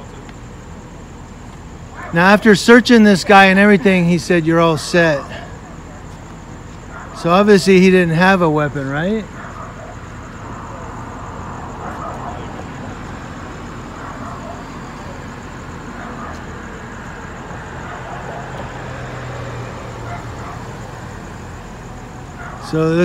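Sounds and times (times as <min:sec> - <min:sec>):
cars driving past: 0:00.0 - 0:23.0
vehicles idling: 0:00.0 - 0:23.0.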